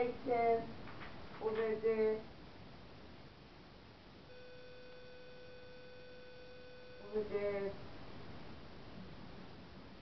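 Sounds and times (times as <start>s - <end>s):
faint electronic beep tone: 4.3s - 7.6s.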